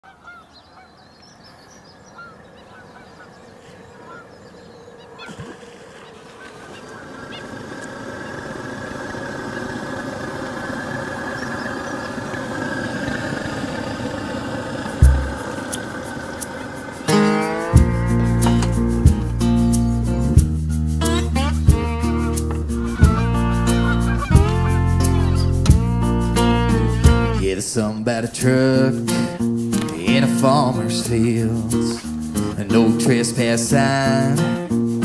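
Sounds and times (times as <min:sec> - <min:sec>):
geese honking: 0:00.0 - 0:18.2, 0:21.0 - 0:27.4
short low thump: 0:15.0 - 0:15.4.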